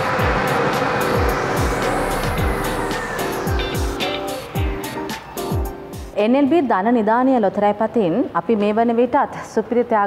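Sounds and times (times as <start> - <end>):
background music with drum beat: 0.0 - 6.2.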